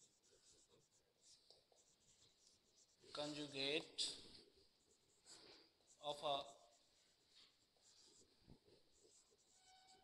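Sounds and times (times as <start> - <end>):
marker squeaking on whiteboard: 0.0 - 3.4, 4.0 - 10.0.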